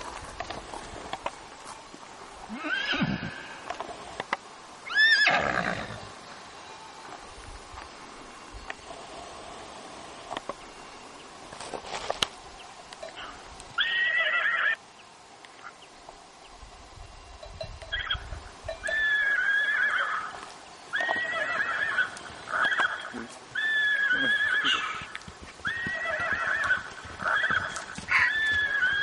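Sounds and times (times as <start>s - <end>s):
horses whinnying: 2.5s - 4.0s, 4.8s - 6.2s, 13.2s - 14.8s, 18.8s - 29.0s
hoofbeats: 20.2s - 29.0s.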